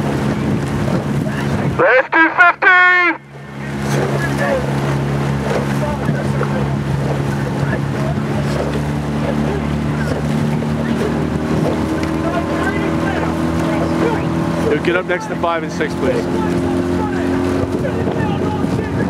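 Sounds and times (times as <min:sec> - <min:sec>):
motorboat motor droning: 0:00.0 - 0:19.0
water noise: 0:00.0 - 0:19.0.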